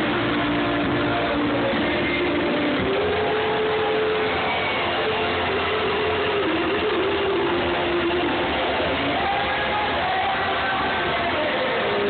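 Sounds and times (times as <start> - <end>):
live band playing loudly: 0.0 - 12.0.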